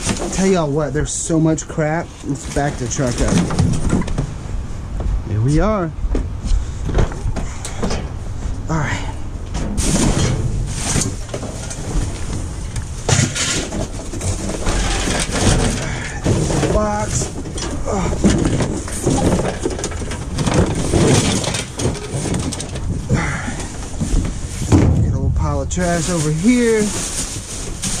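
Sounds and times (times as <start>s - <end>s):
knocks and clatter of trash: 0.0s - 0.8s, 2.3s - 5.2s, 6.1s - 8.5s, 9.4s - 28.0s
cardboard and plastic bags rustling: 0.0s - 5.2s, 9.8s - 28.0s.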